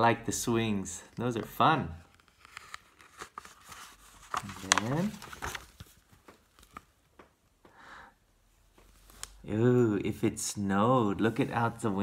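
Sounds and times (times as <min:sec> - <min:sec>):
paper pages rustling: 0:01.1 - 0:07.2, 0:08.8 - 0:09.4.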